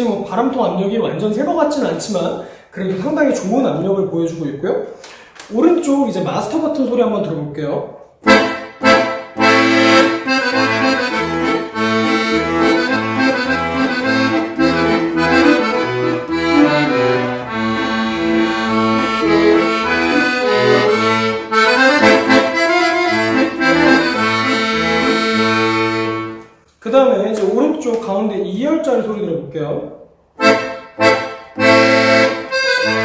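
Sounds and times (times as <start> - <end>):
accordion melody: 8.2 - 26.6, 30.3 - 33.0.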